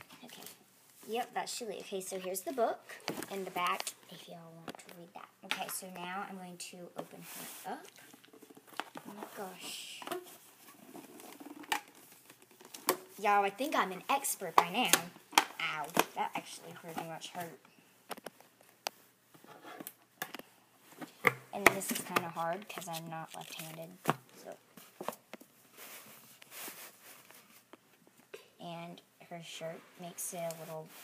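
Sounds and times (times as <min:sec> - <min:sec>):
paper or plastic rustling: 0:24.8 - 0:27.7.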